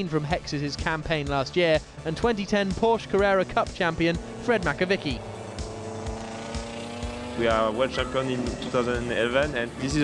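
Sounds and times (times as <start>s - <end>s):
background music: 0.0s - 10.0s
race car engine: 0.0s - 10.0s.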